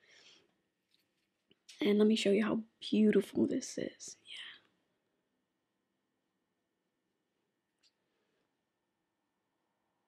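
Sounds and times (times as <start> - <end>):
soft whispery voice: 3.8 - 4.7.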